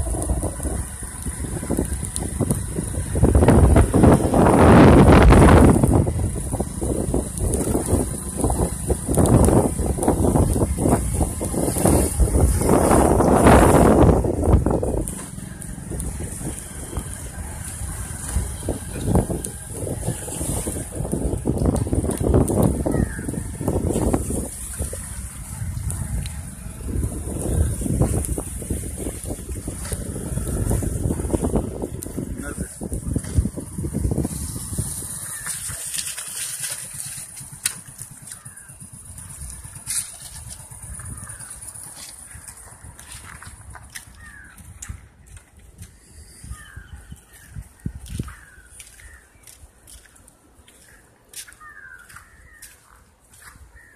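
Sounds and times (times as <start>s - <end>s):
moving vehicle rumble: 0.0s - 53.9s
wind buffeting microphone: 0.0s - 53.9s.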